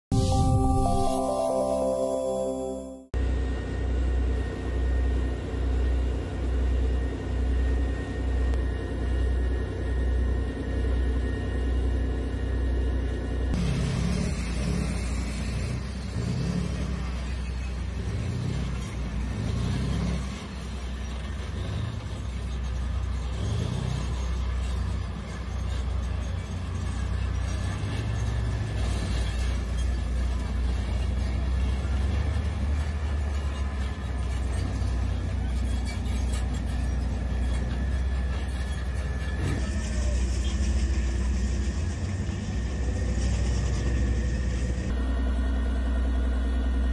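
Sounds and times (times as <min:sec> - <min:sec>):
tank engine and track rumble: 0:03.2 - 0:46.9.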